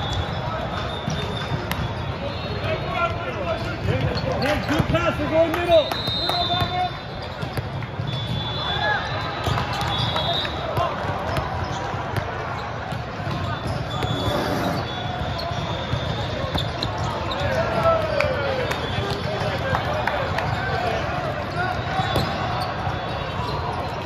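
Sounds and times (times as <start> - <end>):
referee whistle blasts: 0.0 - 2.9, 5.6 - 10.8, 13.4 - 17.4, 21.7 - 24.0.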